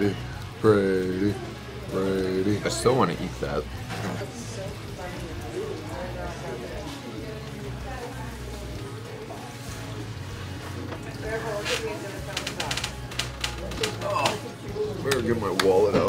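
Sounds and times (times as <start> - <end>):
faint voices: 0.0 - 16.0
hand claps: 15.1 - 15.8.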